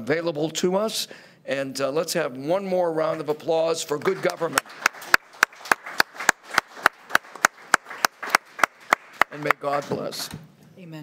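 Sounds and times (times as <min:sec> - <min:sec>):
hand clapping: 0:04.0 - 0:10.3.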